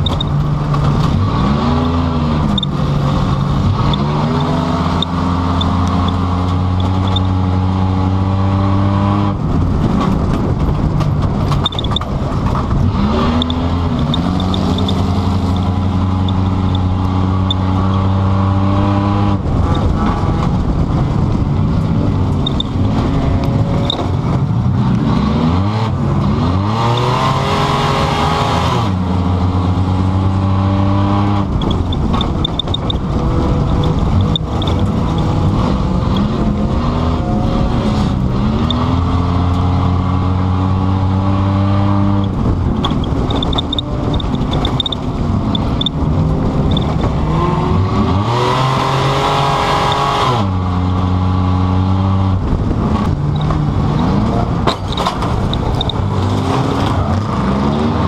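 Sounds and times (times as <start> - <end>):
car engine revving: 0.0 - 58.0.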